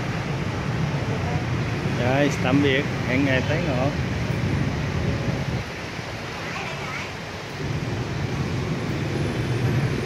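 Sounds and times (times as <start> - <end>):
low rumble of street traffic: 0.0 - 10.0.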